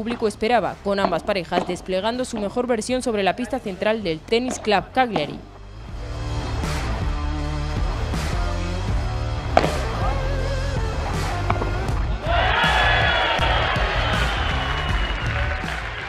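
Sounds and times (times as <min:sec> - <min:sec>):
background music: 0:00.0 - 0:16.0
padel ball hits and bounces: 0:00.9 - 0:02.6, 0:04.4 - 0:05.4, 0:09.5 - 0:10.0
crowd cheering: 0:12.1 - 0:16.0.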